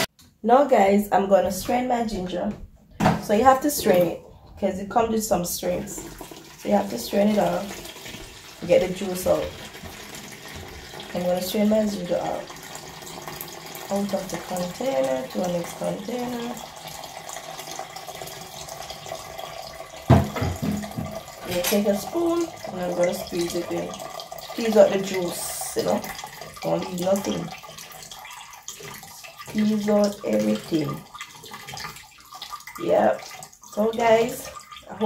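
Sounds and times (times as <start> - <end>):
liquid trickling into pitcher: 3.0 - 35.0.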